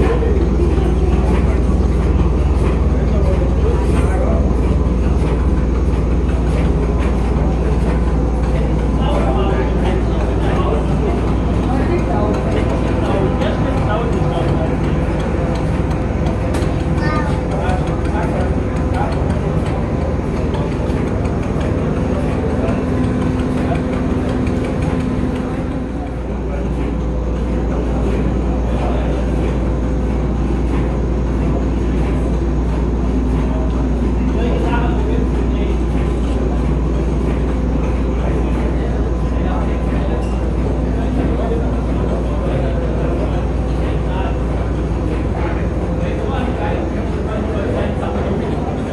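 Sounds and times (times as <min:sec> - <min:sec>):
machine hum: 0:00.0 - 0:48.9
people talking: 0:00.0 - 0:48.9.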